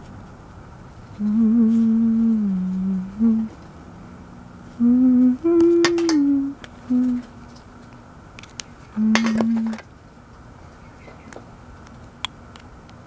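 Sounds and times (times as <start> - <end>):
person humming: 1.2 - 3.6, 4.7 - 7.4, 9.0 - 9.8.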